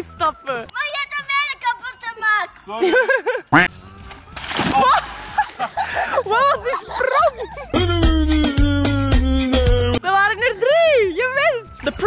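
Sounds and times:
person splashing into pool: 0:04.0 - 0:05.6.

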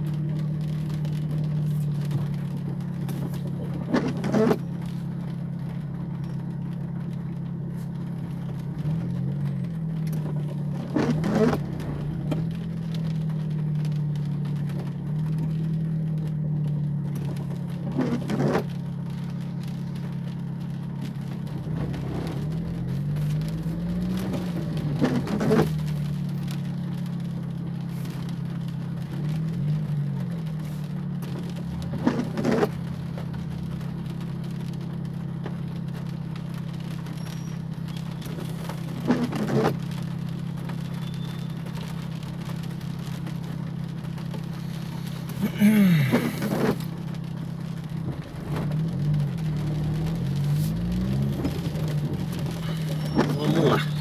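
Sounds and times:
car engine idling: 0:00.0 - 0:54.0
windshield wipers swishing: 0:00.0 - 0:54.0.

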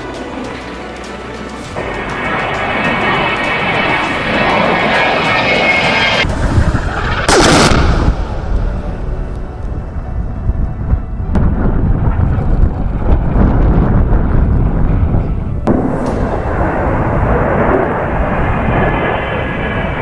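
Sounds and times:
rushing sound falling in pitch: 0:01.6 - 0:20.0
explosions rumbling: 0:01.7 - 0:20.0.

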